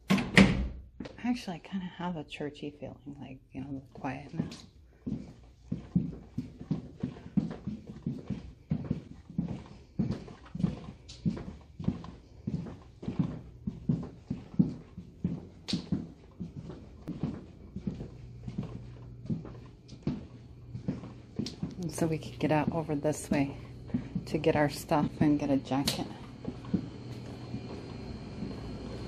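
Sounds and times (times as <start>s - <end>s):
footsteps on hard floor: 3.9s - 29.0s.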